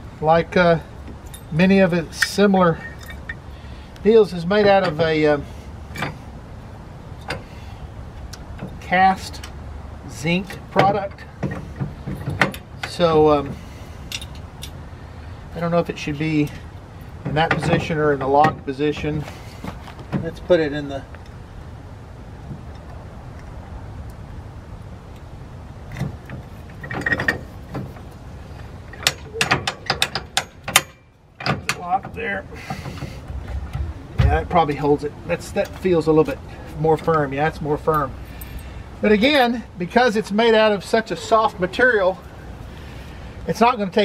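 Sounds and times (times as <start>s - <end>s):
low background rumble: 0.0s - 44.0s
lock clicking and ratcheting: 28.9s - 32.2s.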